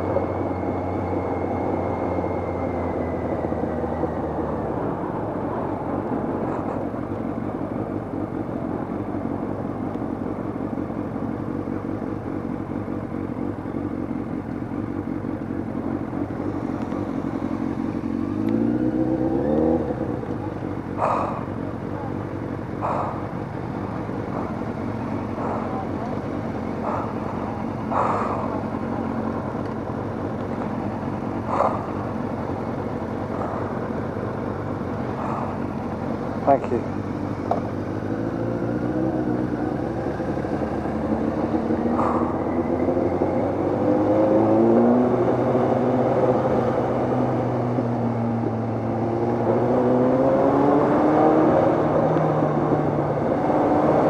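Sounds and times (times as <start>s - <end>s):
motorcycle engine running: 0.0s - 53.4s.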